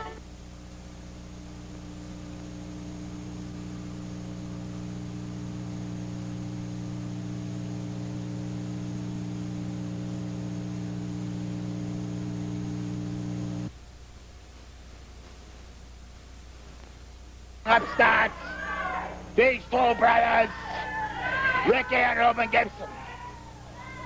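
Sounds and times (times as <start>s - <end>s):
electrical mains hum: 0.0s - 24.0s
faint hiss: 0.0s - 24.0s.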